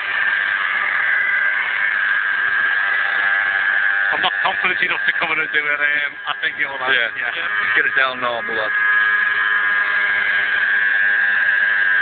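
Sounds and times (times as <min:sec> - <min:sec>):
model helicopter rotor whine: 0:00.0 - 0:12.0.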